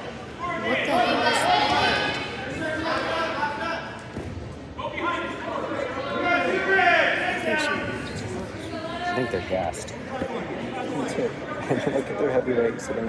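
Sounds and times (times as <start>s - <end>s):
people calling out in gym: 0.0s - 4.0s.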